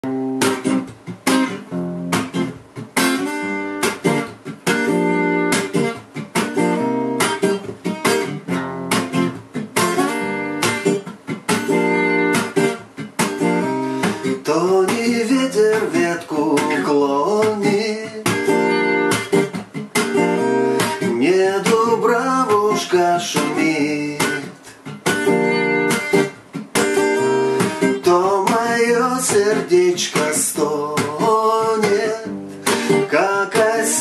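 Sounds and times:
acoustic guitar strumming reggae: 0:00.0 - 0:34.0.

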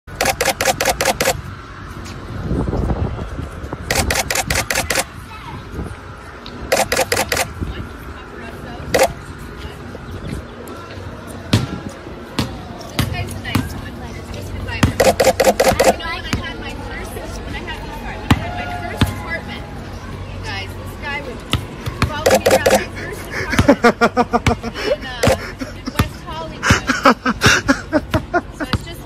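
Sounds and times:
camera shutter clicks: 0:00.2 - 0:01.4, 0:03.9 - 0:05.1, 0:06.7 - 0:07.5, 0:15.0 - 0:16.0, 0:22.3 - 0:22.8
basketball bouncing on concrete: 0:11.5 - 0:13.8, 0:14.6 - 0:16.5, 0:21.5 - 0:22.9, 0:23.5 - 0:23.8.

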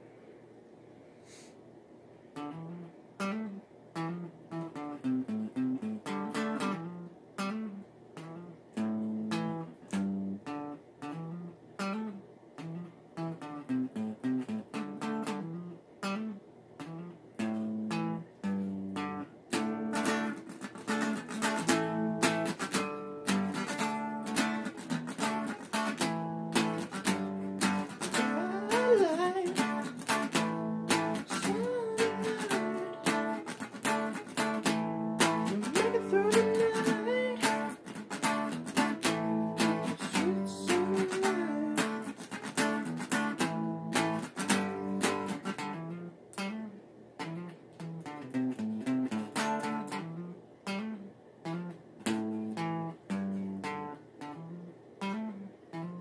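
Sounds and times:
electric guitar playing: 0:02.3 - 0:56.0.

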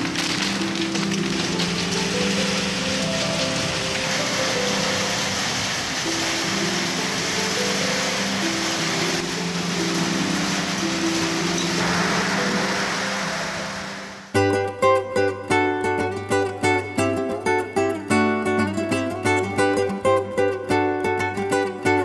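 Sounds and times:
steady rain falling: 0:00.0 - 0:22.0.

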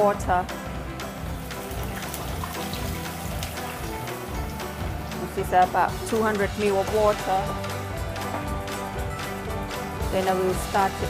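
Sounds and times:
background music: 0:00.0 - 0:11.0
water pouring into a wok: 0:01.1 - 0:07.8.

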